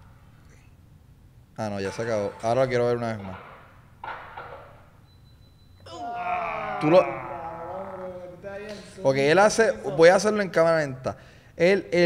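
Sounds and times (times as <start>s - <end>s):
man speaking: 6.6s - 12.0s.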